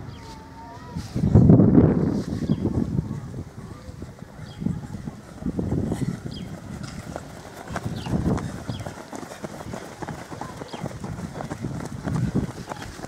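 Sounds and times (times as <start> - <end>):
runners' footfalls on grass: 4.0 - 13.0.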